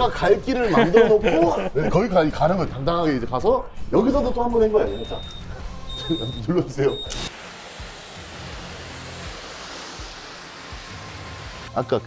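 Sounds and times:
pressure washer spraying water: 7.1s - 11.7s.

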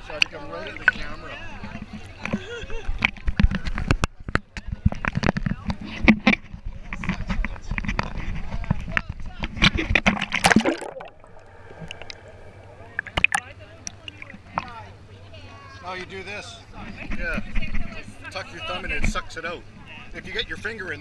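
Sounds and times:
water sloshing and splashing: 9.8s - 14.8s
muffled underwater hum: 10.1s - 14.6s.

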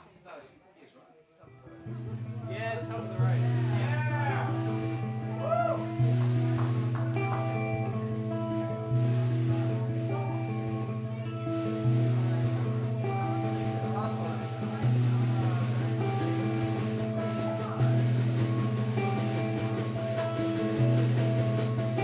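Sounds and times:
guitar: 1.4s - 22.0s
bass line: 1.7s - 22.0s
drums: 1.7s - 22.0s
fiddle melody with sliding notes: 2.0s - 22.0s.

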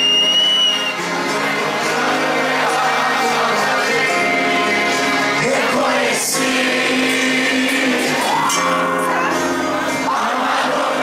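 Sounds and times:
acoustic guitars strumming: 0.0s - 11.0s.

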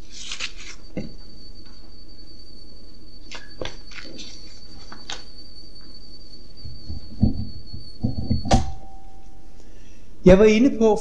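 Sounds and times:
high-pitched whine: 0.0s - 11.0s
dull thumps and knocks: 6.8s - 8.7s.

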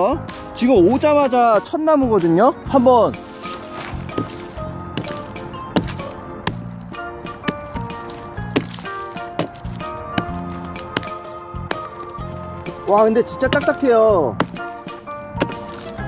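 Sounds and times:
background music: 0.0s - 16.0s
hatchet chopping wood: 4.0s - 6.7s, 7.3s - 16.0s.

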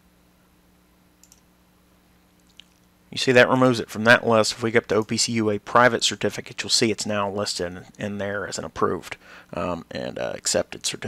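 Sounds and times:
faint low hum: 0.0s - 11.0s
computer mouse click: 1.2s - 1.5s.

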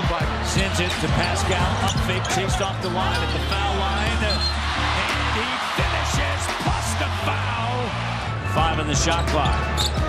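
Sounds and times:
arena crowd noise: 0.0s - 10.0s
background music with bass line: 0.0s - 10.0s.

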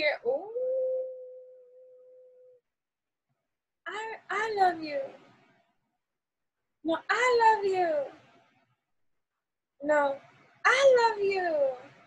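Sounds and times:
woman humming a long tone: 0.4s - 2.6s.

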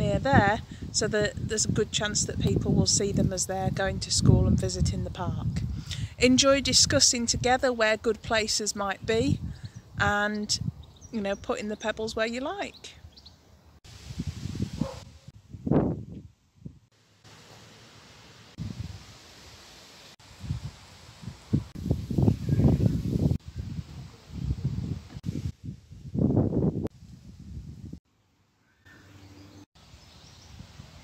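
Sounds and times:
wind gusts on microphone: 0.0s - 16.9s, 18.5s - 19.2s, 20.2s - 28.0s, 30.2s - 31.0s.

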